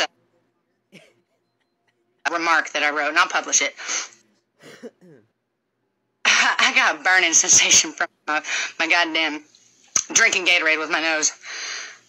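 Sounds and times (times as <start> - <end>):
woman coughing: 0.9 - 1.4, 4.6 - 5.3
woman speaking: 2.2 - 3.8.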